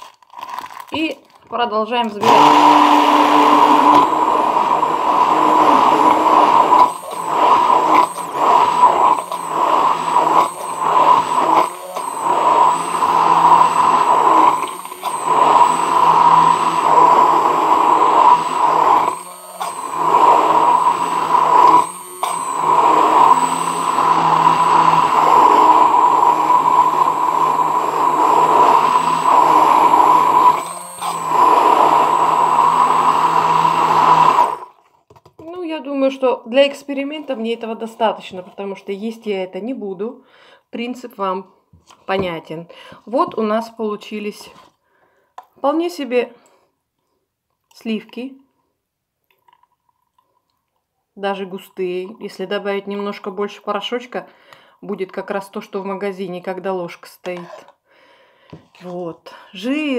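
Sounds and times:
immersion blender running: 2.2s - 34.8s.

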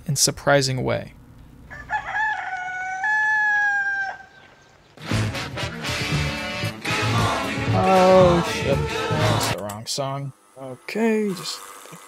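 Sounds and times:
rooster crowing: 1.7s - 4.5s
guitar music: 5.0s - 9.6s.

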